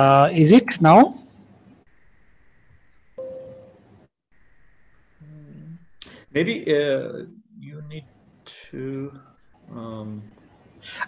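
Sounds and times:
thin high whine: 0:00.0 - 0:11.0
faint steady hiss: 0:01.2 - 0:11.0
short single tone: 0:03.2 - 0:03.8.

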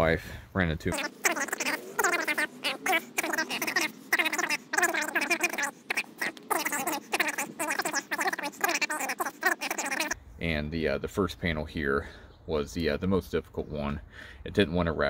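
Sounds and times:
man speaking: 0:00.0 - 0:01.1, 0:10.4 - 0:15.0
sped-up high-pitched speech: 0:00.9 - 0:10.2.

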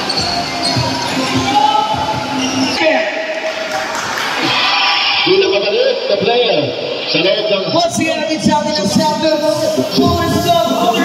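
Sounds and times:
voices: 0:04.4 - 0:11.0.

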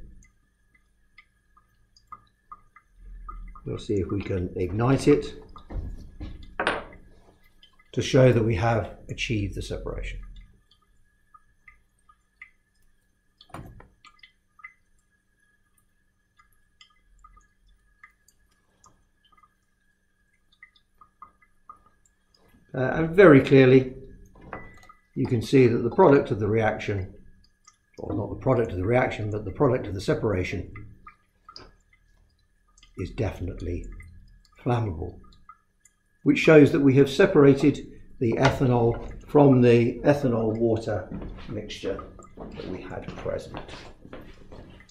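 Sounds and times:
small clicks and ticks: 0:00.0 - 0:08.0, 0:10.0 - 0:22.7, 0:30.7 - 0:36.2.

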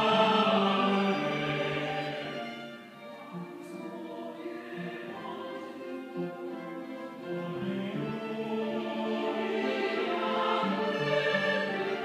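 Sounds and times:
church choir singing: 0:00.0 - 0:12.0
violins: 0:00.0 - 0:12.0.

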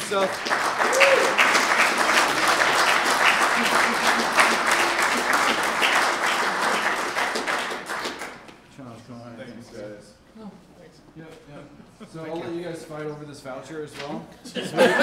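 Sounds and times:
audience applauding: 0:00.0 - 0:08.5.

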